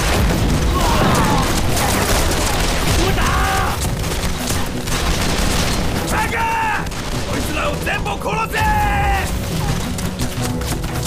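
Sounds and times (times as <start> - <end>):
gunfire crackling: 0.0 - 11.0
people shouting: 0.6 - 4.0, 5.9 - 9.9.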